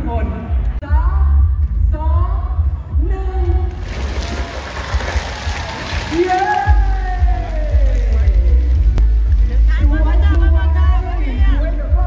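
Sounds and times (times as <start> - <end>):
background music with bass: 0.0 - 12.0.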